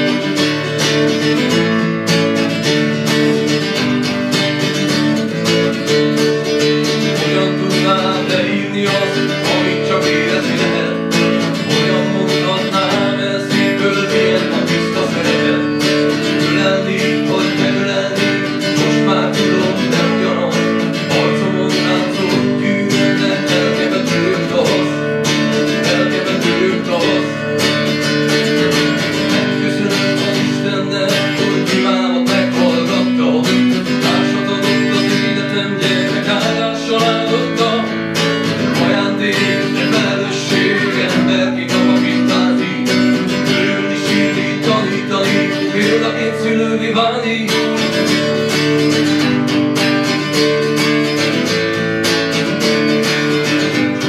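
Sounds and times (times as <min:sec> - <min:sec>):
acoustic guitar strumming chords: 0:00.0 - 0:54.0.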